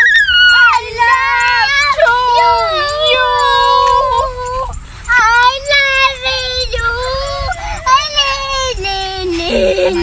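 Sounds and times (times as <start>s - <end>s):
woman wailing in sing-song notes: 9.3s - 10.0s.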